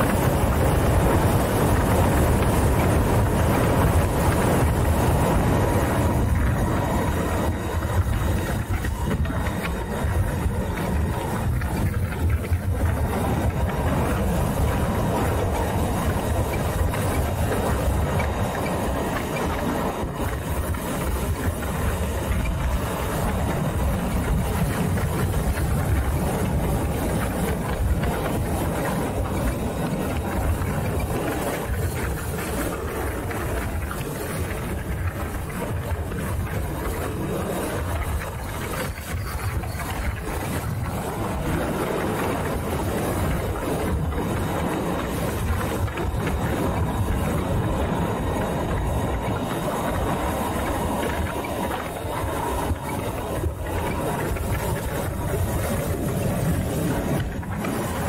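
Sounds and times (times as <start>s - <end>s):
low road rumble: 0.0s - 58.0s
wind rushing over microphone: 0.0s - 58.0s.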